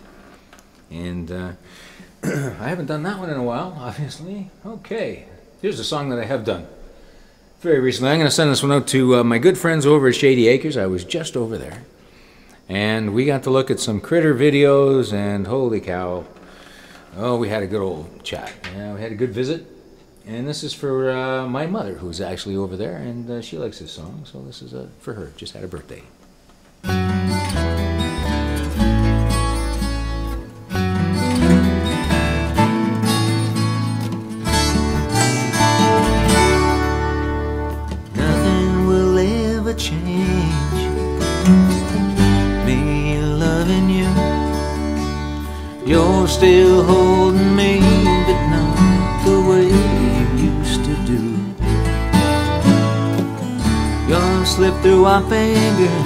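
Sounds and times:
country backing track with bass: 26.5 - 56.0
acoustic guitar strummed: 26.8 - 56.0.

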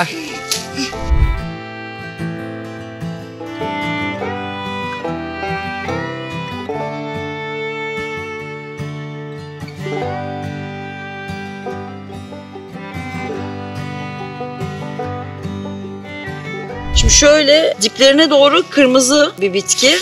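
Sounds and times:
bluegrass tune with plucked strings: 0.0 - 20.0
fiddle: 0.0 - 20.0.

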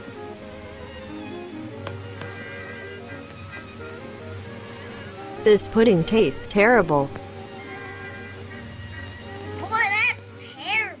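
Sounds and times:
faint film soundtrack music: 0.0 - 11.0
pet animal crying: 2.1 - 6.4, 7.3 - 11.0.

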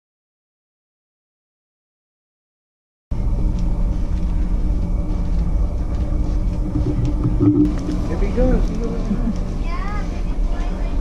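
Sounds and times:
low rumble with faint hum: 3.1 - 11.0.

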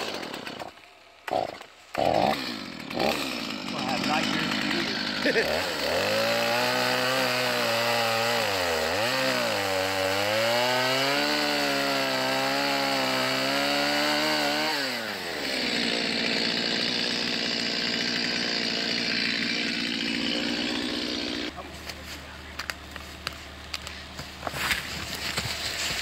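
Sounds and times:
chainsaw cutting wood: 0.0 - 26.0.

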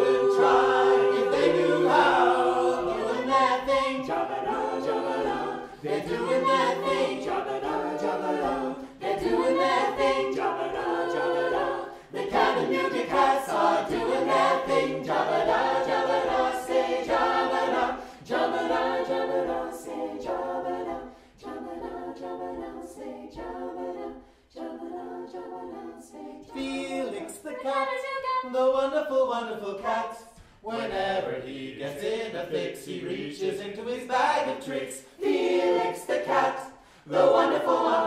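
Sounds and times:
a cappella group singing: 0.0 - 38.0.

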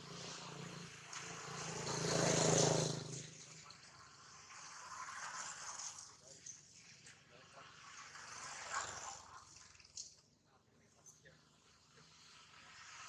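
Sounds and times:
vehicle engine passing: 0.0 - 6.1.

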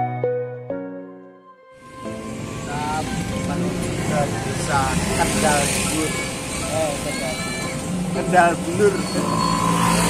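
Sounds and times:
music: 0.0 - 5.5
road traffic rumble: 1.8 - 10.0.

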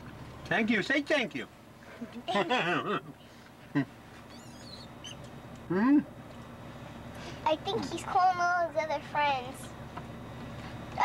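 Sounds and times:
baboon squealing: 4.3 - 5.2.

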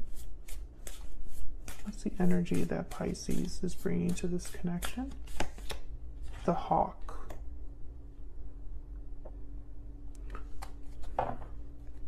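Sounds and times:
cards being shuffled: 0.1 - 6.5, 10.2 - 11.2.

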